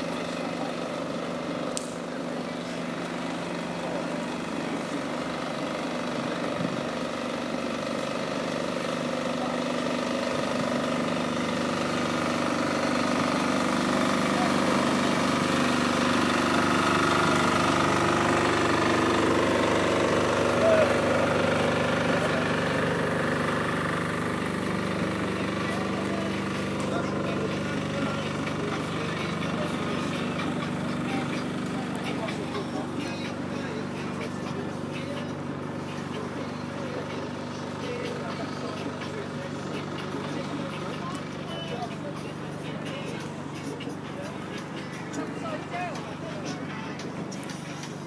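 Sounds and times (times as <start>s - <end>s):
engine hum: 0.0s - 48.0s
voices of people at a market: 0.0s - 48.0s.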